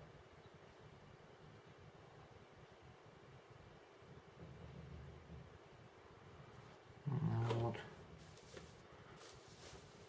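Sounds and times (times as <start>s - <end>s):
low voice-like sound: 7.0s - 8.0s.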